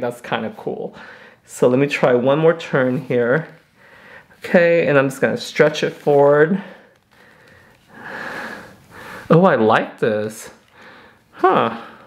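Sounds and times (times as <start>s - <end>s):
person breathing out: 7.1s - 9.3s.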